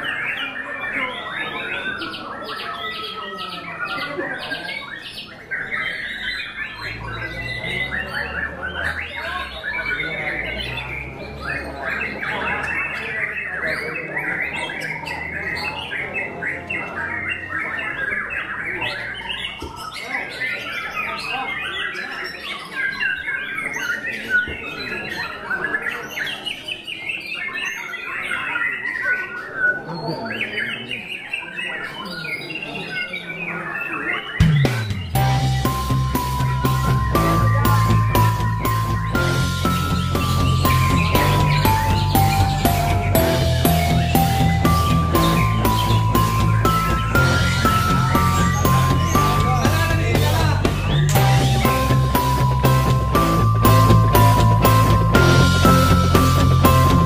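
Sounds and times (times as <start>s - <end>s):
chorus of songbirds singing: 0.0s - 57.0s.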